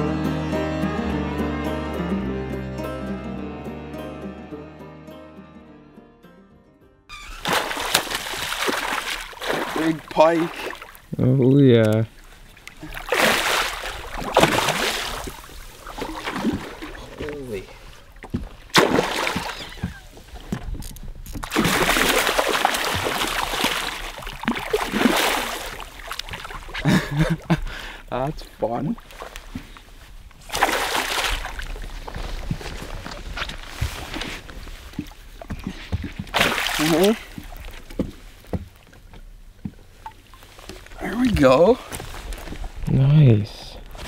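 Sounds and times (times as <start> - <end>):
fish splashing at water surface: 7.3 - 11.0, 12.8 - 17.2, 18.7 - 20.1, 21.4 - 26.8, 30.4 - 37.9
dull knocks against boat hull: 38.0 - 38.8.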